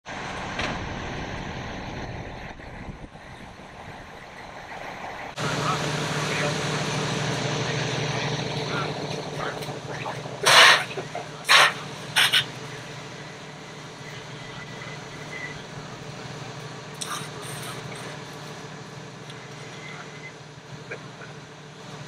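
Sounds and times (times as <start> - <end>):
diesel engine idling: 0.1 - 22.0.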